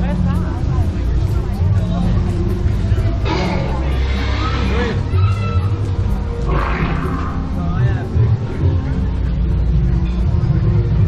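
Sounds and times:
crowd chatter: 0:00.0 - 0:11.0
dinosaur roar: 0:03.2 - 0:05.1, 0:06.4 - 0:07.6.

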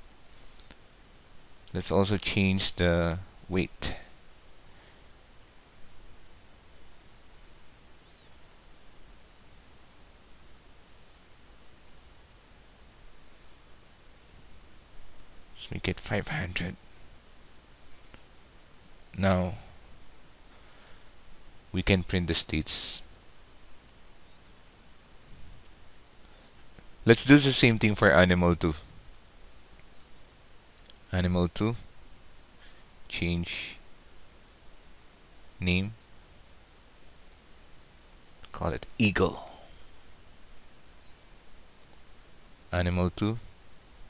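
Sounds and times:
low background hiss: 0:00.0 - 0:44.0
keyboard and mouse clicks: 0:00.1 - 0:01.8, 0:04.8 - 0:05.4, 0:07.0 - 0:08.2, 0:11.8 - 0:12.4, 0:24.2 - 0:24.7, 0:26.0 - 0:26.8, 0:36.0 - 0:39.0, 0:41.8 - 0:42.7
faint high chirp: 0:00.2 - 0:00.8, 0:08.0 - 0:08.4, 0:10.8 - 0:11.3, 0:13.2 - 0:13.8, 0:17.8 - 0:18.2, 0:24.2 - 0:24.6, 0:29.8 - 0:30.4, 0:37.3 - 0:37.9, 0:41.0 - 0:41.6.

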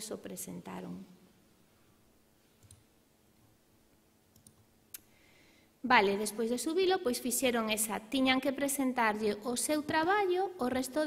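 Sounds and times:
faint computer mouse clicks: 0:02.6 - 0:02.9, 0:04.3 - 0:05.1.

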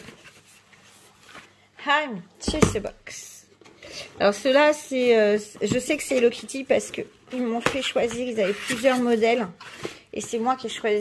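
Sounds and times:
cardboard packaging scraping: 0:08.2 - 0:10.1.

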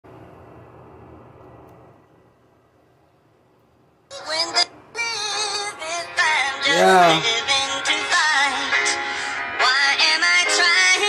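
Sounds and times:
autotuned wavering vocal melody: 0:06.5 - 0:07.5.

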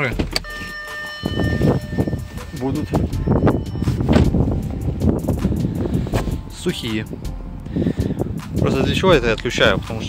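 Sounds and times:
handling noise: 0:00.0 - 0:05.5
wind buffeting microphone: 0:01.2 - 0:10.0.

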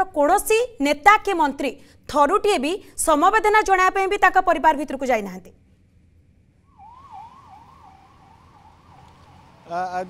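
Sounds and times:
faint wailing siren: 0:06.7 - 0:10.0.

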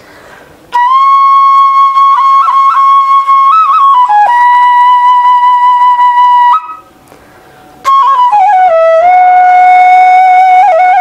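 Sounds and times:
bamboo flute playing: 0:00.7 - 0:07.0, 0:07.8 - 0:11.0.

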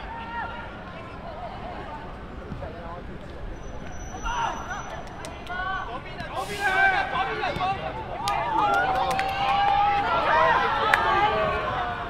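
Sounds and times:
voices shouting outdoors: 0:00.0 - 0:12.0.

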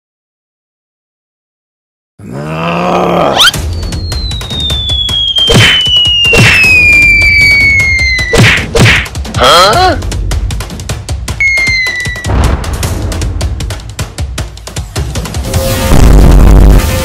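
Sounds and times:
background music: 0:02.5 - 0:17.0
falling cartoon whistle: 0:03.4 - 0:08.4, 0:11.4 - 0:12.3
hard whacks: 0:05.4 - 0:06.8, 0:08.3 - 0:09.2.

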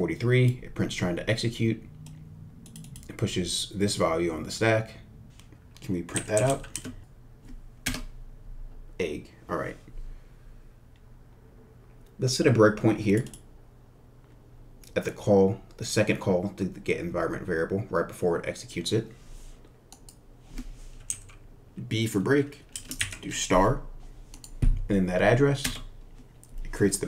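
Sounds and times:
computer keyboard typing: 0:02.0 - 0:03.1, 0:06.1 - 0:07.0, 0:07.8 - 0:08.1, 0:21.0 - 0:21.4, 0:22.7 - 0:23.2
light computer clicks: 0:02.0 - 0:03.1.

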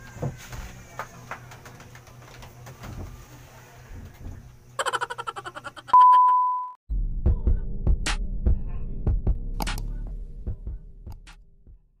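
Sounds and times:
deep throbbing bass hum: 0:06.9 - 0:11.8.

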